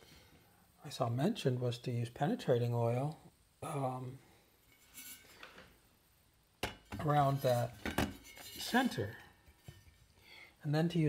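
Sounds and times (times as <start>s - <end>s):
soft scraping of metal platter: 4.4s - 5.8s, 6.8s - 10.2s.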